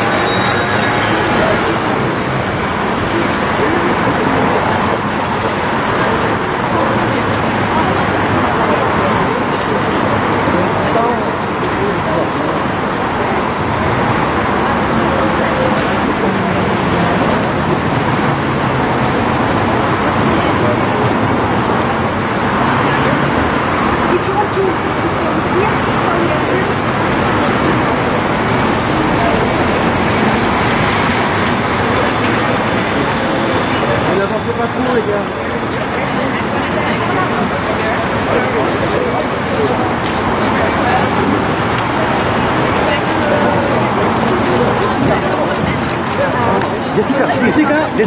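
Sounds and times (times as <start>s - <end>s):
indistinct crowd voices: 0.0s - 48.0s
traffic noise: 0.0s - 48.0s.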